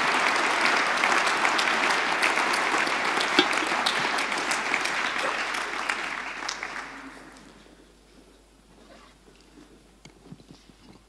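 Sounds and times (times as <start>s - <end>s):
faint hall room noise: 0.0s - 11.0s.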